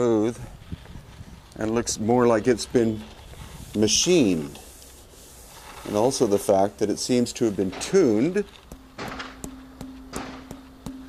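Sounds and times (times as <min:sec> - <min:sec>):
granite vessel tapped ringing: 0:08.7 - 0:11.0.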